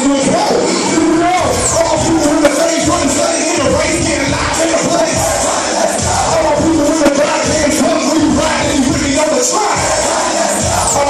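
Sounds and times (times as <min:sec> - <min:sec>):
crowd noise: 0:00.0 - 0:11.0
hip hop track over pa system: 0:00.0 - 0:11.0.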